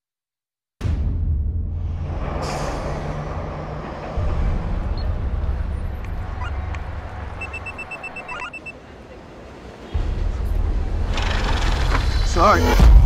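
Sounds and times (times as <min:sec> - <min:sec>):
low rumbling drone: 0:00.8 - 0:07.5
rapid high electronic beeps: 0:07.4 - 0:08.8.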